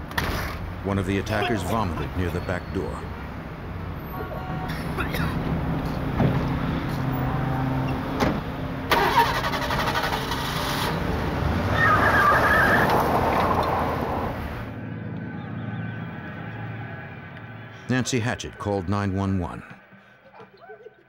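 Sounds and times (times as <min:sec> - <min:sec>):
car engine starting and running: 0:04.9 - 0:15.2
car doors shutting: 0:07.8 - 0:10.4.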